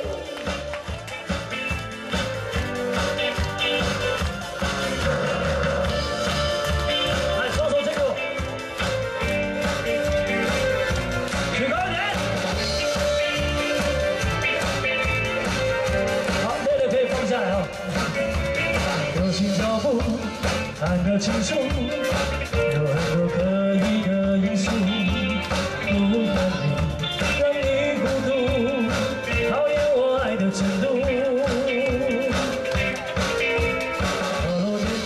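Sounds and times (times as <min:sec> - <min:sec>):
drums: 0:00.0 - 0:35.0
guitars: 0:00.0 - 0:35.0
man singing: 0:11.3 - 0:35.0.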